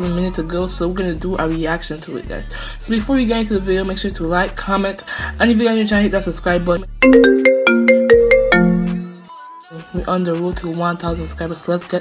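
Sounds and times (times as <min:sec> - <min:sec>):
phone ringtone: 0:07.0 - 0:09.4.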